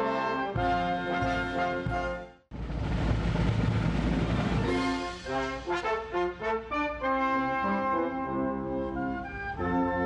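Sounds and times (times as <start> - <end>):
brass band playing: 0.0 - 2.4, 3.8 - 10.0
drum roll: 0.5 - 6.7.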